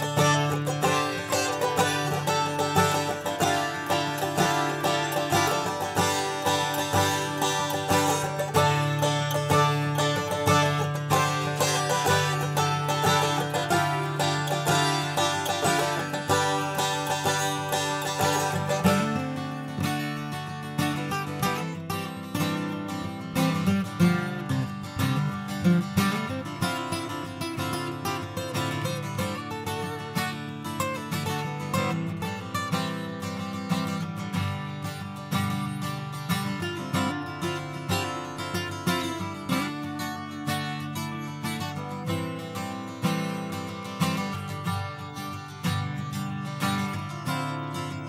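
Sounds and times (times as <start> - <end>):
picked acoustic guitar: 0.0 - 48.0.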